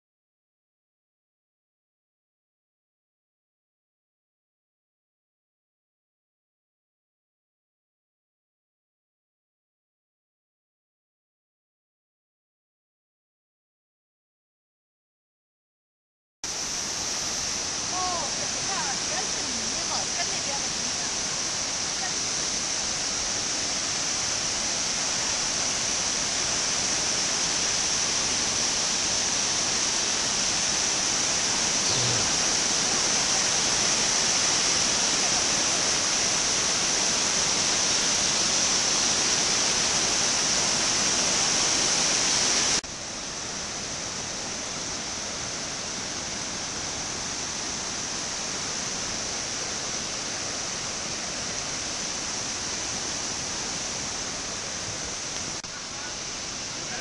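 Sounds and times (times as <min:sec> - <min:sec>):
water rushing over terraces: 0:16.5 - 0:57.0.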